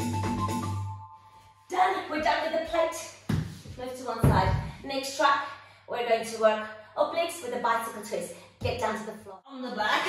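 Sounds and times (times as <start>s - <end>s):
woman speaking: 1.7s - 3.2s, 3.8s - 10.0s.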